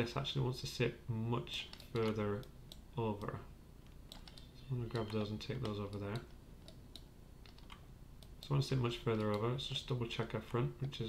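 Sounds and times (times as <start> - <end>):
keyboard and mouse clicks: 1.6 - 9.5.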